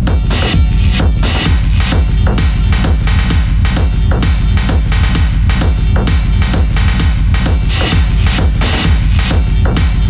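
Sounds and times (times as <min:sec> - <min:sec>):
driving kick drum beat: 0:00.0 - 0:10.0
industrial techno music: 0:00.0 - 0:10.0
sharp hi-hat hits: 0:00.0 - 0:10.0.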